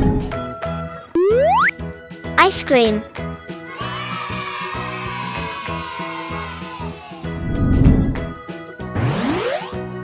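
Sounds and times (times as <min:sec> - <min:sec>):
children's background music: 0:00.2 - 0:10.0
rising cartoon glide: 0:01.2 - 0:01.8, 0:09.0 - 0:09.8
swish: 0:07.4 - 0:08.3.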